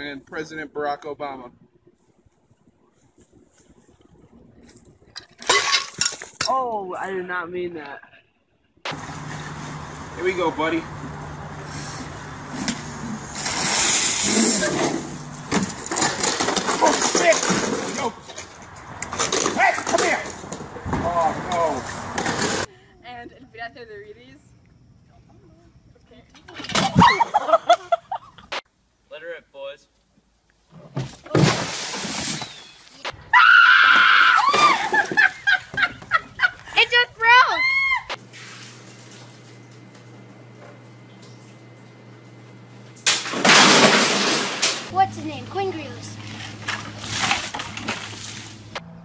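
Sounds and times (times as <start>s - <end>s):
woman shrieking: 33.3s - 34.9s, 37.2s - 38.2s.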